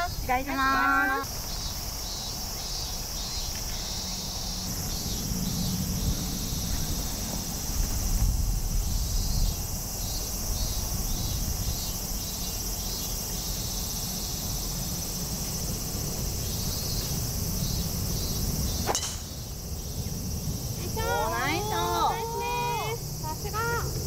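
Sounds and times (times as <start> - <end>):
high insect drone: 0.0 - 24.0
wind on microphone: 4.8 - 12.3
golf ball struck by club: 18.8 - 19.4.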